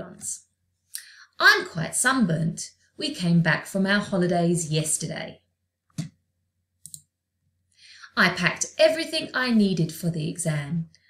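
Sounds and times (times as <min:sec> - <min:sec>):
person speaking: 0:00.0 - 0:06.1
soft breath: 0:07.7 - 0:08.1.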